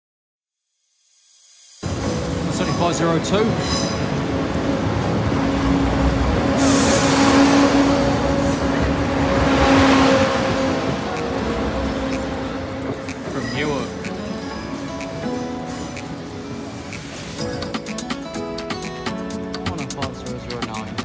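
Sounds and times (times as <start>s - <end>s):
diesel train passing: 1.8s - 21.0s.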